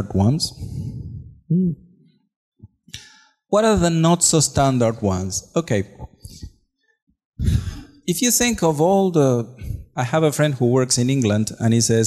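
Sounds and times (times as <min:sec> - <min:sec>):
man speaking: 0:00.0 - 0:01.8, 0:03.5 - 0:06.5, 0:07.4 - 0:12.0
man's sharp breath: 0:00.6 - 0:01.4, 0:02.9 - 0:03.4, 0:07.4 - 0:08.0.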